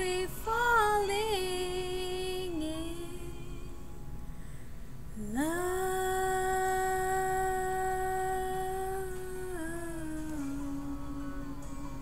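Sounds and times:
woman singing a long held note: 0:00.0 - 0:03.8, 0:05.2 - 0:12.0.

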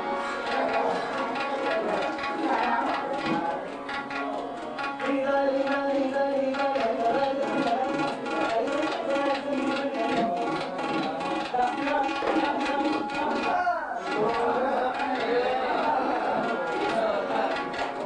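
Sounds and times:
tabla strokes: 0:00.0 - 0:18.0
man singing classical vocals: 0:04.9 - 0:18.0.

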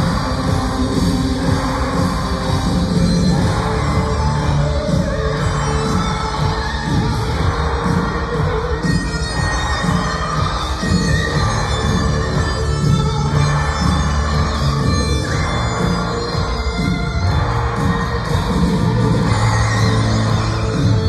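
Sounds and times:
crowd noise: 0:00.0 - 0:21.0
rock band playing live: 0:00.0 - 0:21.0.

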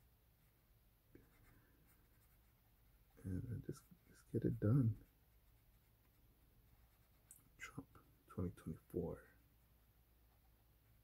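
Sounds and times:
marker rubbing on paper: 0:01.2 - 0:07.3.

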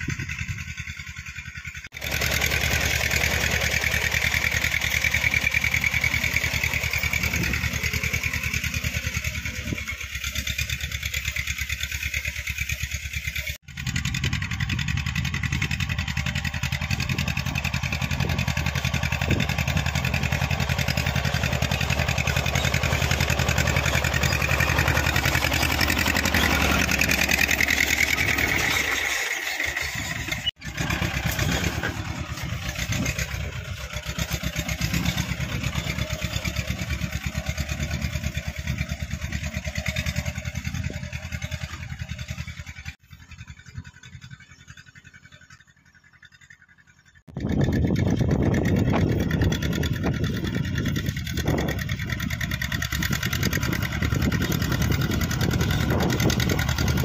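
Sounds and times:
diesel tractor engine running: 0:00.0 - 0:57.0.

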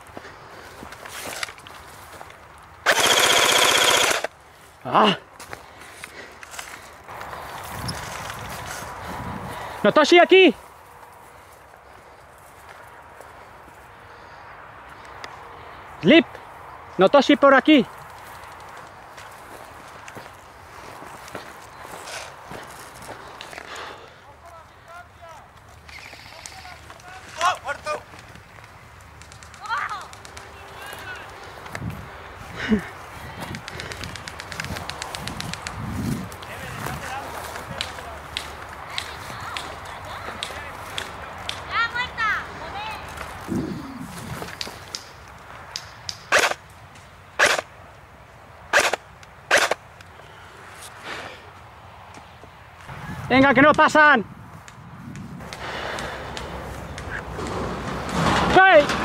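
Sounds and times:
rustling through dry brush: 0:00.0 - 0:53.4, 0:54.3 - 0:58.9
distant voices calling out: 0:00.0 - 0:54.8, 0:55.4 - 0:59.0
sharp cracks: 0:01.2 - 0:04.4, 0:25.6 - 0:31.8, 0:33.5 - 0:41.7, 0:44.4 - 0:47.8, 0:48.7 - 0:50.1, 0:54.6 - 0:59.0.

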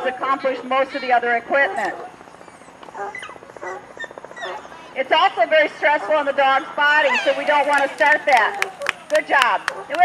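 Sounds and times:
dog crying high-pitched: 0:01.7 - 0:04.7, 0:07.0 - 0:07.6.

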